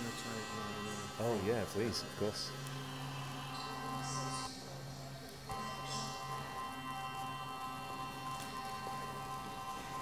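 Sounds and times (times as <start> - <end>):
electronic drone tones: 5.5 - 10.0.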